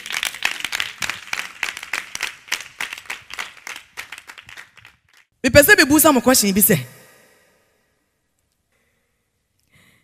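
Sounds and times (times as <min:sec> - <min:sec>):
people clapping: 0:00.0 - 0:05.4.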